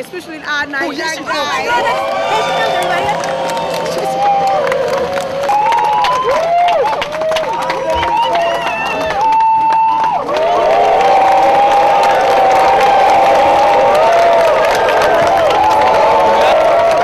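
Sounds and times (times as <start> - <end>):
crowd cheering and screaming: 0.8 - 17.0
long high shout: 1.2 - 17.0.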